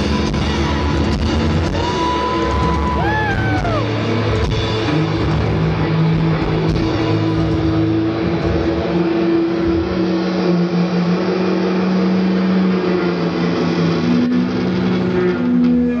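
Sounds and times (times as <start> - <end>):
distorted electric guitar chords: 0.0 - 16.0.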